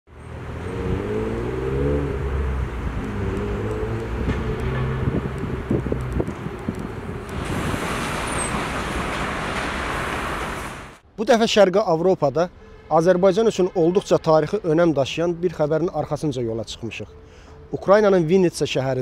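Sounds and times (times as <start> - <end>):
engine accelerating: 0.3 - 8.5
traffic hiss: 2.2 - 11.0.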